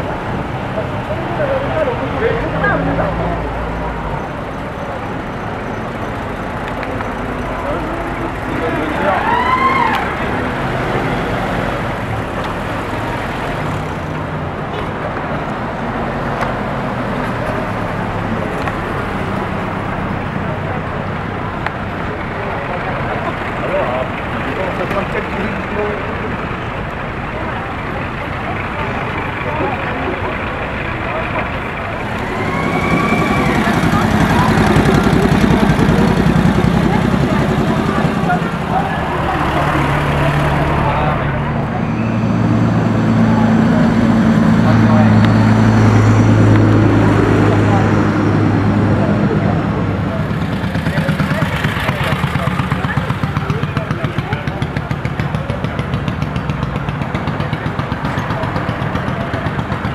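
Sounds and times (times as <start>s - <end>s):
crowd chatter: 0.0s - 59.9s
military vehicle engines driving past: 0.0s - 59.9s
rising and falling call: 32.0s - 34.8s.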